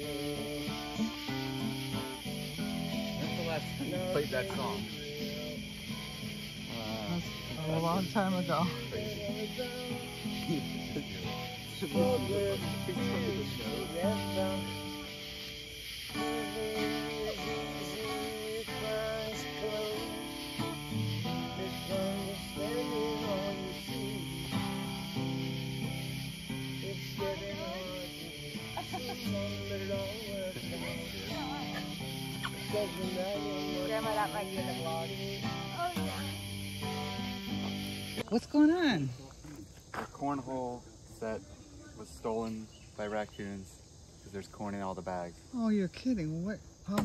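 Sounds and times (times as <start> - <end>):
man singing: 0.0 - 1.3, 3.1 - 5.9, 6.6 - 15.2, 16.1 - 24.9, 26.4 - 36.1
acoustic guitar strumming: 0.0 - 38.8.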